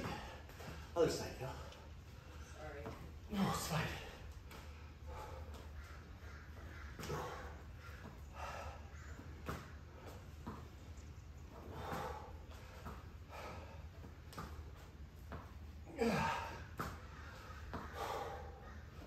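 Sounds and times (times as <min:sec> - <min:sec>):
person breathing hard: 0:03.3 - 0:05.8, 0:07.0 - 0:09.2, 0:11.5 - 0:14.1, 0:15.9 - 0:19.0.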